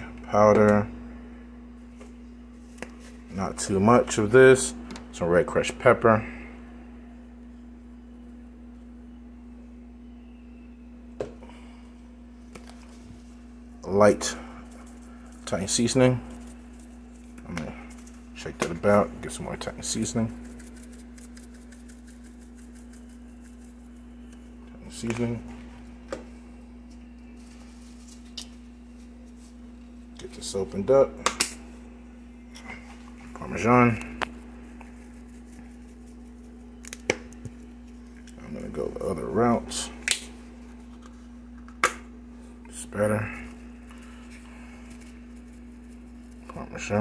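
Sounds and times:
low electrical hum: 0.0 - 47.0.

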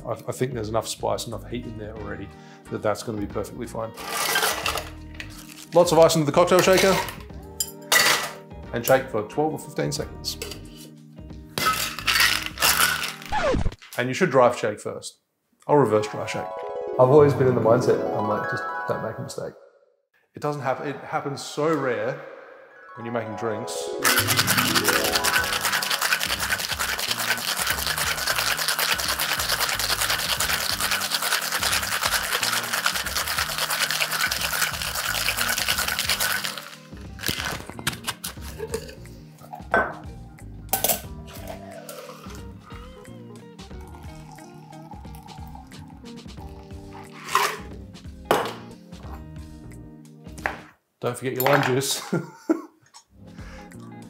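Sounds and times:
ice rattling in cocktail shaker: 4.0 - 5.9, 6.6 - 7.2, 11.6 - 13.3, 24.0 - 38.7, 47.1 - 47.7.

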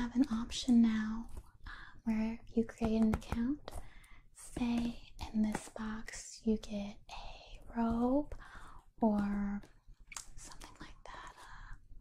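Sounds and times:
woman speaking: 0.0 - 3.7, 4.4 - 8.4, 9.0 - 9.7
woman whispering: 4.4 - 8.4, 9.0 - 11.8.

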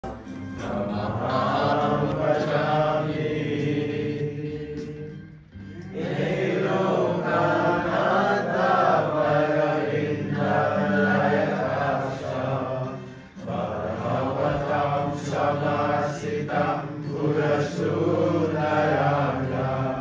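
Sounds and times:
devotional chanting with music: 0.0 - 20.0.

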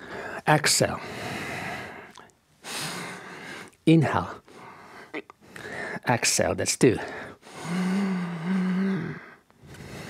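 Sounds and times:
man breathing: 0.0 - 0.4, 1.0 - 3.8, 4.4 - 6.0, 7.0 - 10.0.

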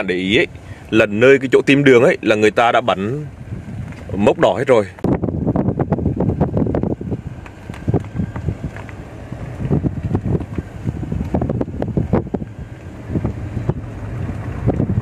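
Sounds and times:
wind buffeting microphone: 1.6 - 15.0.

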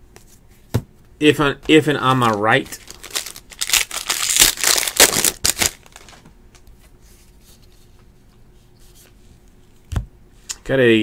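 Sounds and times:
foil wrapper crinkling and tearing: 2.2 - 6.2.

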